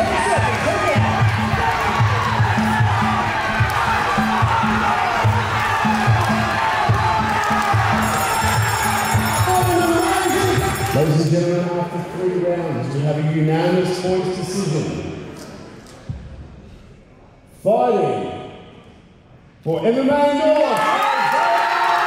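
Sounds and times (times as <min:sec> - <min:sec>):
crowd cheering and shouting: 0:00.0 - 0:11.3, 0:20.4 - 0:22.0.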